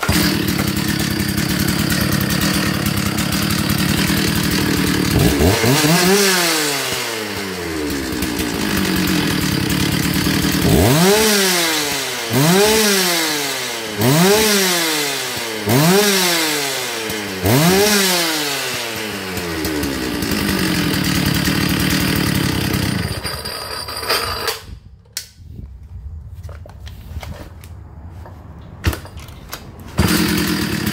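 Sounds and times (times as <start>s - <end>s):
chainsaw idling and revving: 0.0s - 24.6s, 29.9s - 30.9s.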